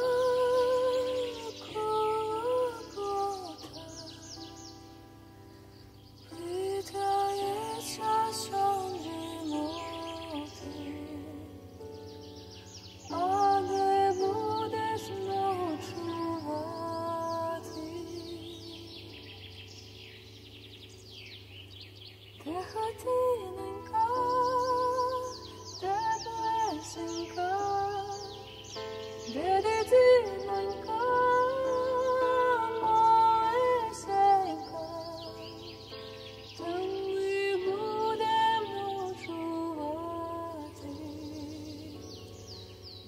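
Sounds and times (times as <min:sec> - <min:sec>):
woman singing lullaby: 0:00.0 - 0:04.8, 0:06.2 - 0:12.2, 0:13.0 - 0:19.6, 0:22.4 - 0:42.5
small birds chirping: 0:00.0 - 0:43.0.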